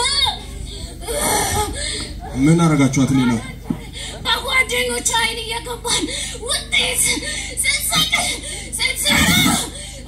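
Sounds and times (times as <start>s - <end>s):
woman whimpering cries: 0.0s - 2.5s.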